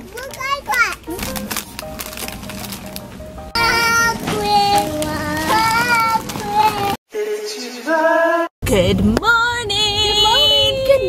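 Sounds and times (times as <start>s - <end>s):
backing music: 0.2s - 7.0s.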